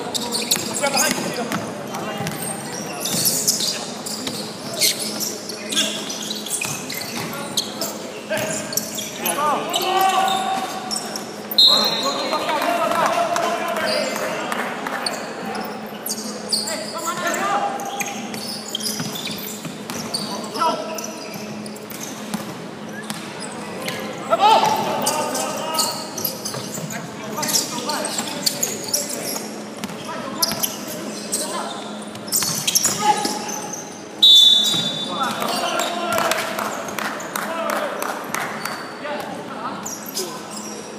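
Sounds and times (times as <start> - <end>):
referee whistle blasts: 11.5 - 12.2, 34.2 - 35.2.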